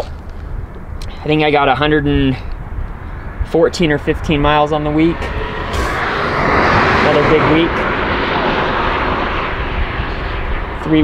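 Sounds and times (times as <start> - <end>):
car passing on highway: 2.7 - 11.0.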